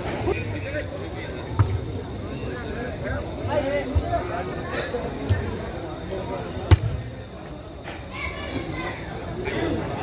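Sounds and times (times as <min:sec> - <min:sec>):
spectators talking and calling: 0:00.0 - 0:10.0
football kicked thud: 0:06.7 - 0:07.0.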